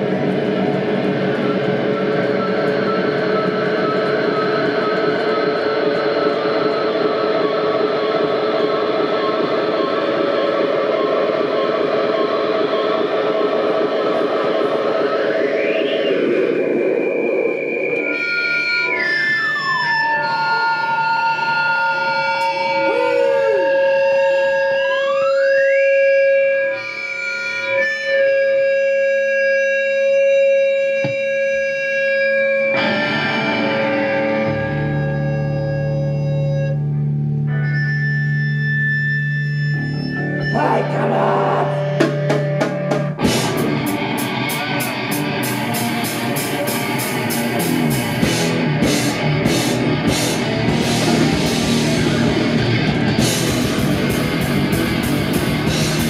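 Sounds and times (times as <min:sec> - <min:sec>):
metal band playing loud: 0:00.0 - 0:15.7, 0:40.2 - 0:56.0
held distorted guitar notes sliding: 0:00.0 - 0:56.0.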